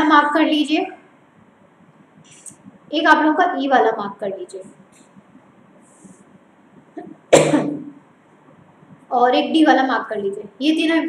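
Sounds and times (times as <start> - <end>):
woman coughing: 7.3 - 7.9.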